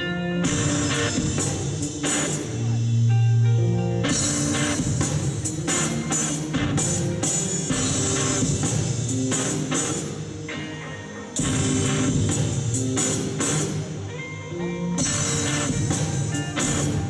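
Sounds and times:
rock band playing: 0.0 - 17.0.

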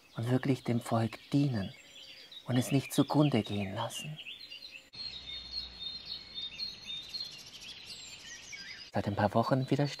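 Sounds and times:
songbirds chirping and whistling: 0.0 - 10.0.

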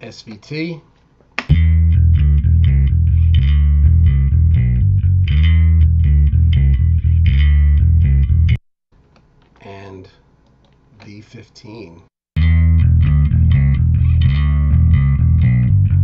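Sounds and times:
electric bass line: 1.5 - 8.6, 12.4 - 16.0.

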